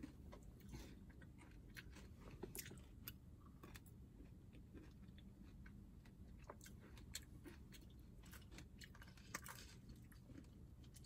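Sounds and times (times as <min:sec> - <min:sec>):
close-up chewing: 0:00.0 - 0:11.0.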